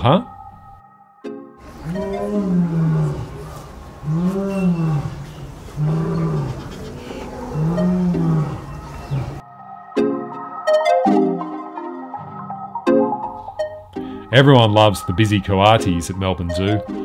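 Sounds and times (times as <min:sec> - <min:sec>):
male lion roaring: 0:01.8 - 0:09.4.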